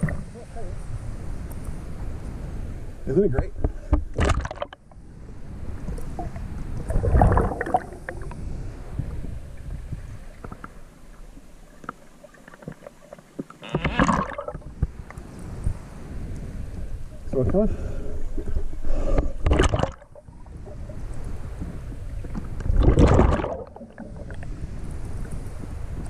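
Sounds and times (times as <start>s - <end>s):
muffled underwater rumble: 0.0s - 12.8s, 13.6s - 26.0s
water sloshing surges: 0.0s - 26.0s.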